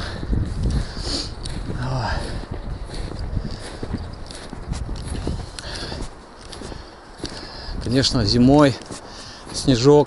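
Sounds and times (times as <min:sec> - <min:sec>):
footsteps in snow: 0:00.0 - 0:10.0.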